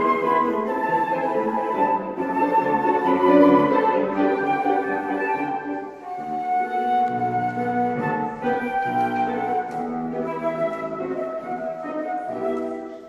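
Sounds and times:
flute melody: 0.0 - 13.0
grand piano accompaniment: 0.0 - 13.0.

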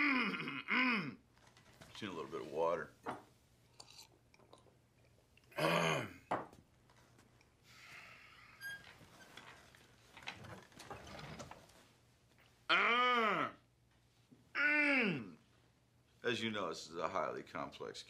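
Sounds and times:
man grunting: 12.7 - 13.6, 14.6 - 15.4.

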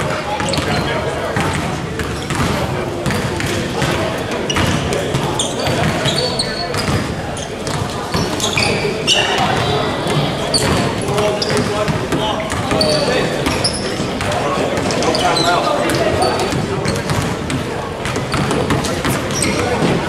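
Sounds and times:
many voices talking: 0.0 - 20.0
basketball bouncing: 0.4 - 15.0, 15.9 - 20.0
sneakers squeaking on hardwood: 0.4 - 20.0.

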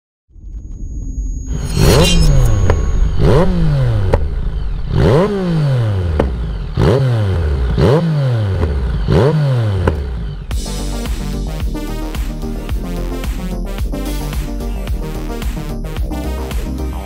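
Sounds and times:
motorcycle engine revving: 1.5 - 11.2.

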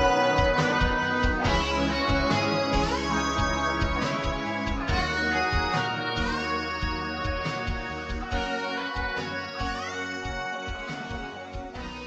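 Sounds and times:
instrumental band music: 0.0 - 12.0
steady drum beat: 0.0 - 12.0.

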